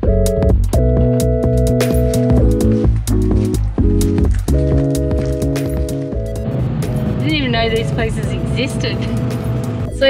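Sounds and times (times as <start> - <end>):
background music with held notes: 0.0 - 10.0
steady low rumble: 0.8 - 10.0
voice: 7.2 - 9.2.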